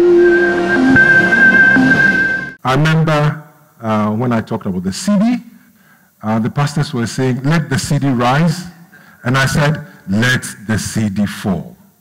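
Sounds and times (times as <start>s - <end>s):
electronic music of held tones: 0.0s - 2.6s
noisy whooshing: 0.0s - 2.6s.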